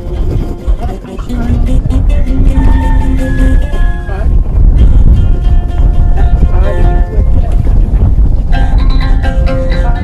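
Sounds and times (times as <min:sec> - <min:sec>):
wind buffeting microphone: 0:00.0 - 0:10.0
person singing long wavering notes: 0:00.8 - 0:04.4.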